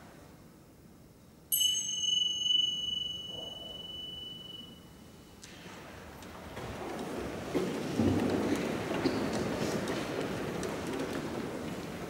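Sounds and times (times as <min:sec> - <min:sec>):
small high-pitched bell ringing: 0:01.5 - 0:05.2.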